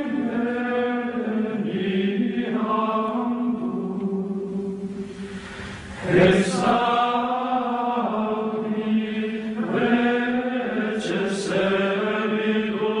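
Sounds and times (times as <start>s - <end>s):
chant-like singing voice: 0.0s - 13.0s.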